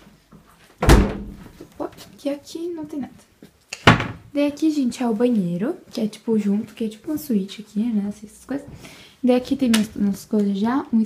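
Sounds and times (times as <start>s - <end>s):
fridge door thumping shut: 0.8s - 1.4s.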